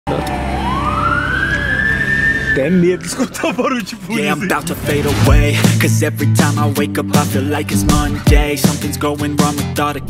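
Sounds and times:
siren wailing: 0:00.1 - 0:04.1
low rumble: 0:07.6 - 0:08.5.

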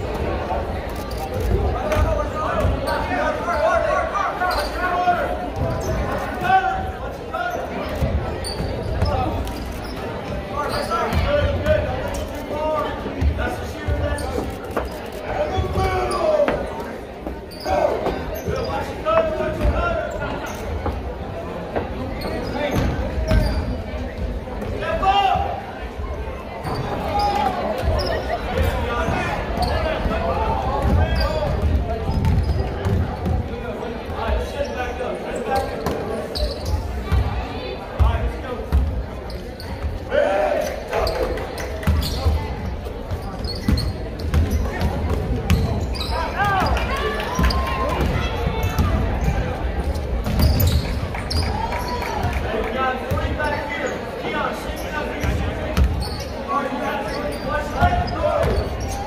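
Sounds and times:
spectators talking: 0:00.0 - 0:59.0
shoes squeaking on court: 0:04.4 - 0:21.1, 0:21.7 - 0:24.7, 0:26.6 - 0:33.5, 0:34.3 - 0:37.2, 0:38.0 - 0:52.4, 0:53.0 - 0:59.0.

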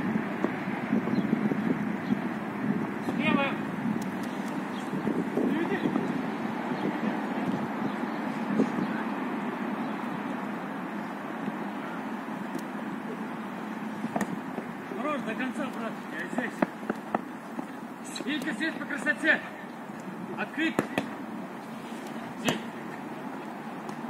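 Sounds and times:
steady rushing background noise: 0:00.0 - 0:24.0
players calling out: 0:08.9 - 0:24.0
football being kicked: 0:20.7 - 0:21.2, 0:22.4 - 0:22.8.

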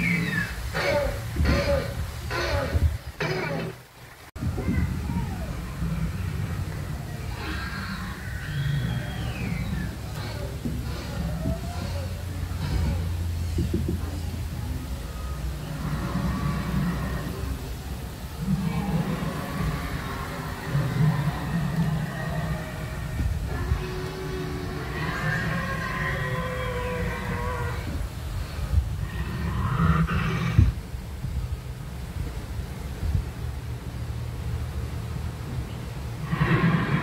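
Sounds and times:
low rumble: 0:04.3 - 0:37.0
dinosaur roar: 0:05.0 - 0:13.2, 0:15.5 - 0:17.7, 0:18.3 - 0:30.8, 0:36.2 - 0:37.0.

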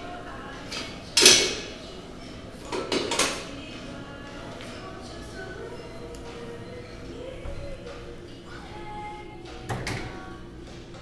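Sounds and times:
metal gym equipment clanking: 0:00.7 - 0:03.5.

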